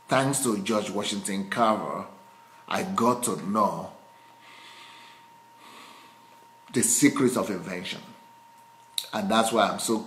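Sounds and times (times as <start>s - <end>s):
man breathing softly: 4.1s - 6.4s.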